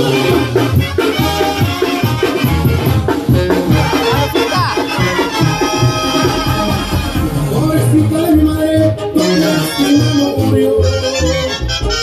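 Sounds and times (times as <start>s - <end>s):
brass section playing: 0.0s - 12.0s
tuba bass line: 0.0s - 12.0s.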